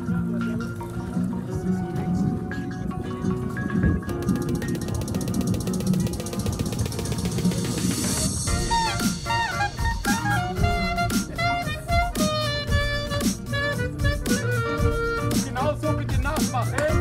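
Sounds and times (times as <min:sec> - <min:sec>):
electronic backing track: 0:00.0 - 0:17.0
fast even ticking rhythm: 0:03.8 - 0:17.0
drum beat: 0:04.0 - 0:17.0
clarinet melody with bending notes: 0:08.3 - 0:16.1.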